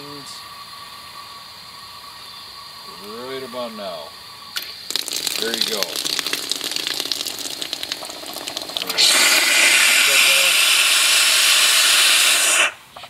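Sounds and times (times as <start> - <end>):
crackling sputter of injector: 4.5 - 13.0
loud steam hiss: 8.2 - 13.0.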